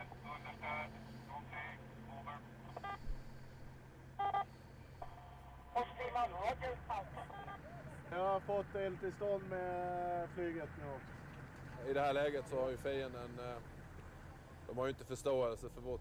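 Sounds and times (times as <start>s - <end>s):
radio voice traffic: 0.0s - 3.5s, 4.2s - 8.1s
steady low hum: 0.0s - 14.7s.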